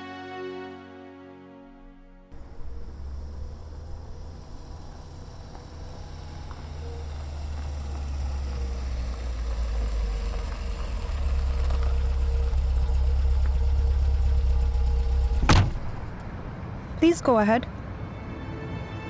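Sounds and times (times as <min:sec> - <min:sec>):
car engine idling: 0:02.3 - 0:16.8
car door shutting: 0:15.2 - 0:16.3.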